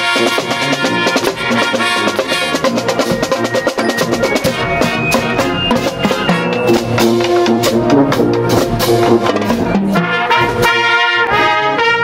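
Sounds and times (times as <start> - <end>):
brass section playing: 0.0 - 12.0
marching drumline: 0.0 - 12.0.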